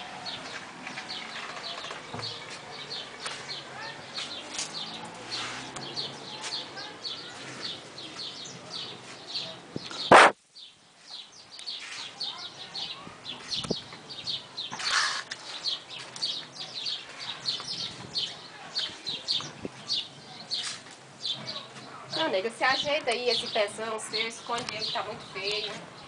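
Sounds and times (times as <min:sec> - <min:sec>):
small birds chirping: 0:00.0 - 0:26.0
loud sharp click: 0:10.1 - 0:10.4.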